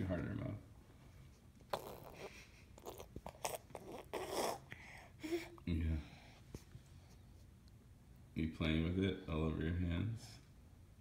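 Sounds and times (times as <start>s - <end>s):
baby chewing and crunching: 1.6s - 5.0s.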